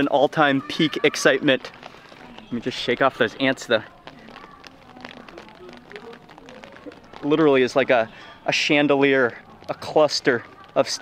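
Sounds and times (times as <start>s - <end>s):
bean pods rustling: 0.0s - 11.0s
faint distant voices: 0.0s - 11.0s.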